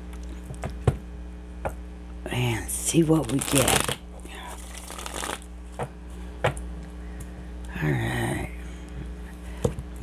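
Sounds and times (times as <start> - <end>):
cards being shuffled: 3.1 - 5.5.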